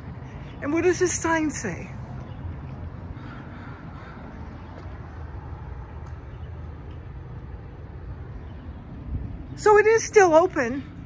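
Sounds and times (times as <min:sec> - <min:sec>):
city street rumble: 0:00.0 - 0:11.0
distant crow cawing: 0:02.7 - 0:05.4.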